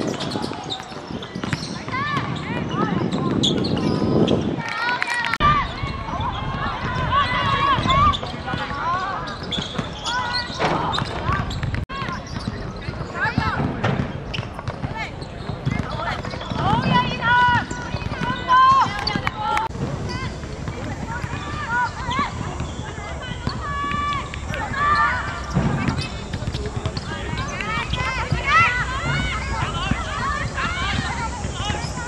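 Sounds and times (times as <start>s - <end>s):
players shouting: 4.6s - 13.7s, 14.9s - 32.0s.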